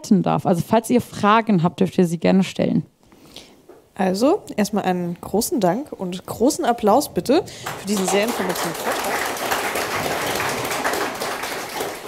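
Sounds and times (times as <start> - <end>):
audience applause: 7.6 - 12.0.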